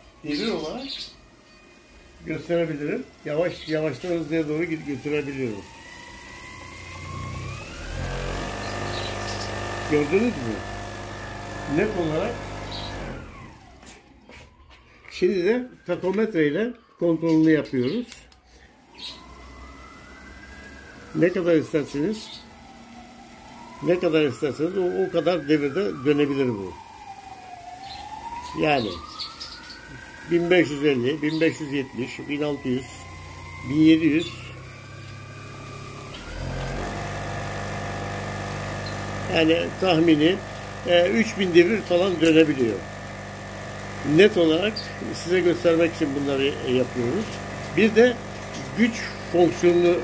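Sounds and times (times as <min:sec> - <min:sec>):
motor whine spinning down: 0:00.0 - 0:14.6, 0:18.6 - 0:50.0.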